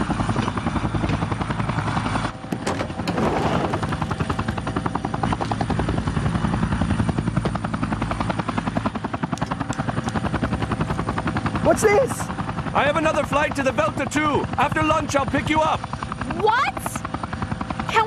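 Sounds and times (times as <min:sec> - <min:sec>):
helicopter rotor blades beating: 0:00.0 - 0:18.0
turbine running: 0:00.0 - 0:18.0.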